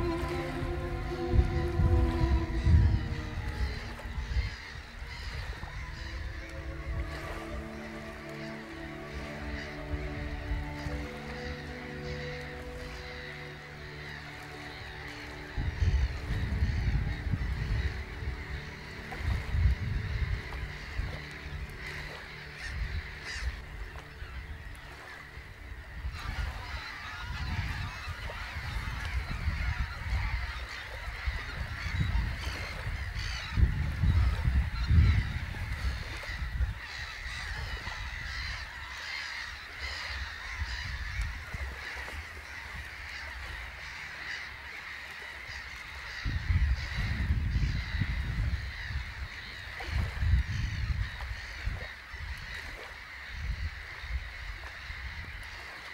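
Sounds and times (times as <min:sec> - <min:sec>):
geese honking: 0:00.0 - 0:55.9.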